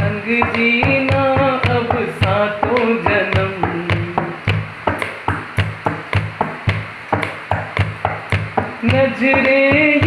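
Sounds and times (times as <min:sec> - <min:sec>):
person singing: 0:00.0 - 0:04.4, 0:08.8 - 0:10.0
hand tapping on hard surface: 0:00.0 - 0:10.0.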